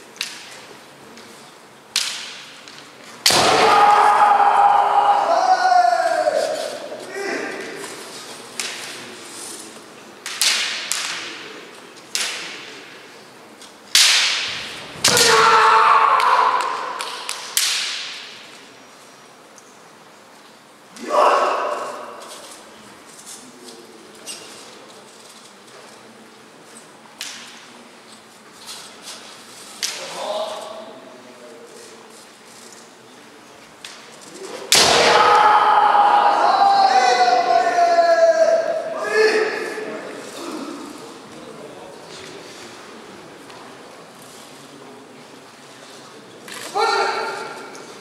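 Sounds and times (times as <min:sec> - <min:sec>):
low hall noise: 0:00.0 - 0:48.0
bamboo sword strikes cracking: 0:01.9 - 0:02.5, 0:03.2 - 0:03.8, 0:10.2 - 0:11.3, 0:13.9 - 0:15.5, 0:16.2 - 0:18.4, 0:34.7 - 0:35.4
long shout: 0:03.3 - 0:07.8, 0:15.0 - 0:17.3, 0:21.0 - 0:22.1, 0:34.9 - 0:40.0, 0:46.7 - 0:47.7.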